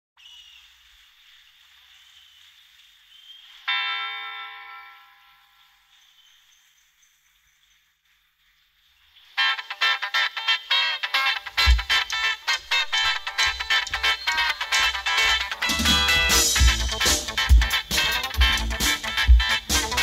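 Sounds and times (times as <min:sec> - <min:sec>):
faint hiss: 0:00.2 - 0:20.0
rock band playing: 0:11.1 - 0:20.0.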